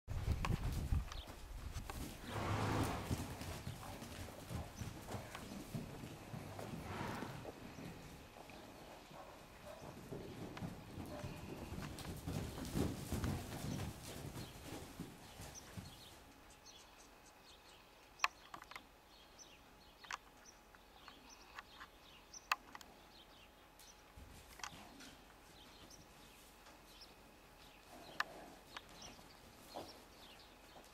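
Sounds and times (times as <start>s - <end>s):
soft hoofbeats on dirt: 0.1s - 17.5s, 19.4s - 30.9s.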